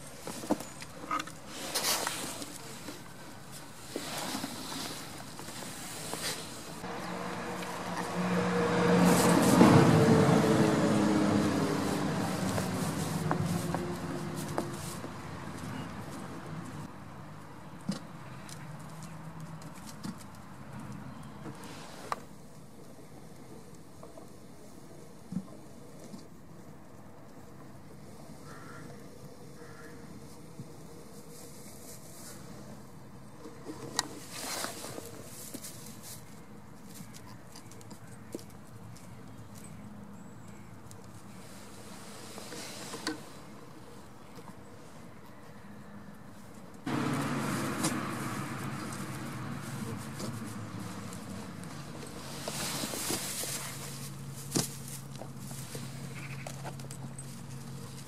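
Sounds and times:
motor vehicle passing: 0:06.8 - 0:16.9, 0:46.8 - 0:56.4.

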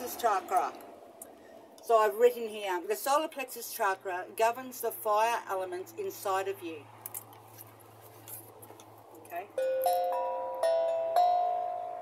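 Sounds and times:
steel tongue drum notes: 0:09.6 - 0:12.0.

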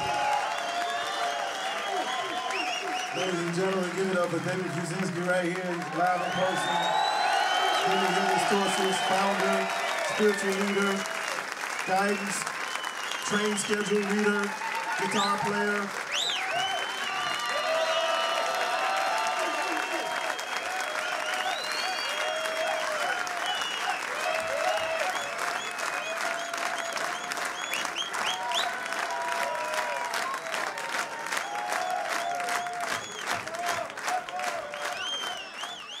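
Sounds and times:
audience applauding: 0:00.0 - 0:36.0
crowd cheering: 0:00.0 - 0:36.0
crowd whistling: 0:00.0 - 0:36.0
rhythmic clapping: 0:00.0 - 0:36.0.

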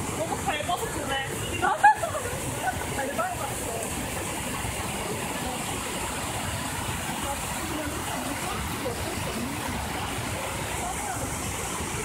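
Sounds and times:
water rushing over waterfalls: 0:00.0 - 0:12.0.

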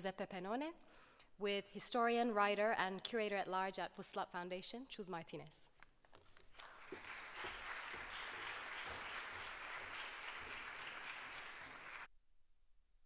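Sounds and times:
audience applauding: 0:06.4 - 0:12.1.

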